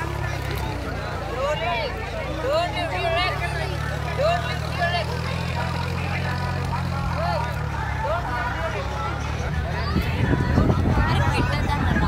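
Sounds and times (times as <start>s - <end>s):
low engine hum: 0.0s - 12.0s
voices calling and chattering: 0.0s - 12.0s.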